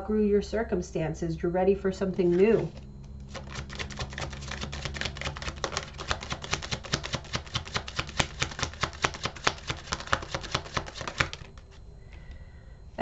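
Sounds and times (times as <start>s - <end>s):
cards being shuffled by hand: 2.2s - 11.8s.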